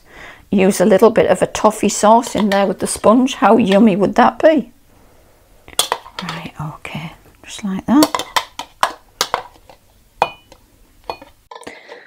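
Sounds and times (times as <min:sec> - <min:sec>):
metal spoon knocking on glass bowl: 0:10.2 - 0:11.7.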